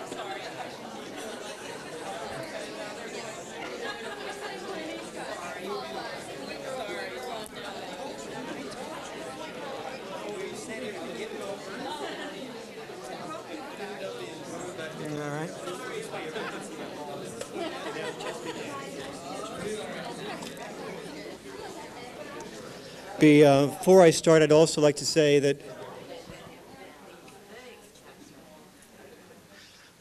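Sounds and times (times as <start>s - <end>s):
crowd chatter: 0.0s - 30.0s.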